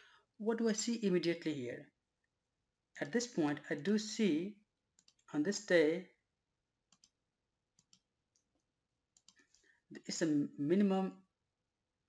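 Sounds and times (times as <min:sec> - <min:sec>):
computer mouse clicks: 0:05.0 - 0:05.3, 0:06.9 - 0:07.2, 0:07.8 - 0:09.7.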